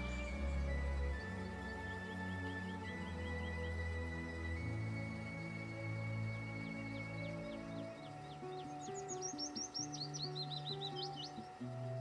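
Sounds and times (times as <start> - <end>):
background music with low notes: 0.0 - 12.0
songbird chirping and trilling: 0.0 - 12.0.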